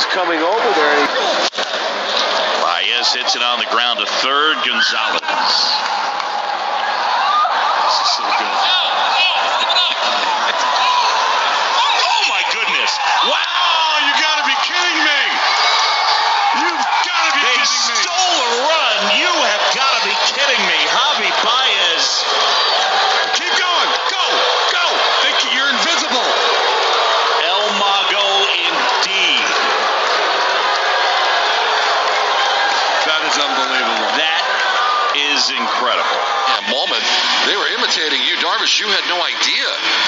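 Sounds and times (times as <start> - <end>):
crowd shouting and cheering: 0.0 - 40.0.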